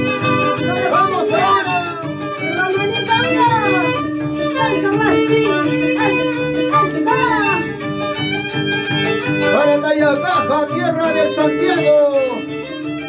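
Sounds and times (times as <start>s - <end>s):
violin sliding between notes: 0.0s - 13.0s.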